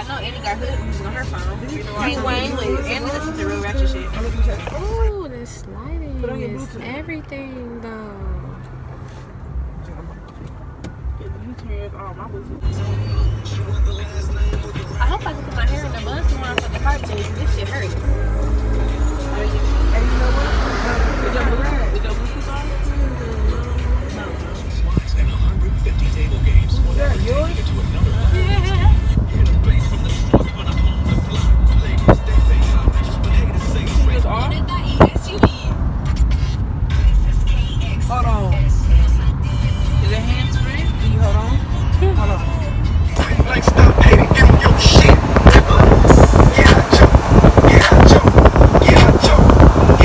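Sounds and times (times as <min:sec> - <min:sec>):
music: 0:00.0 - 0:05.1, 0:12.6 - 0:20.2, 0:22.1 - 0:47.0
car engine rumble and road noise: 0:00.0 - 0:50.0
voices: 0:00.0 - 0:50.0.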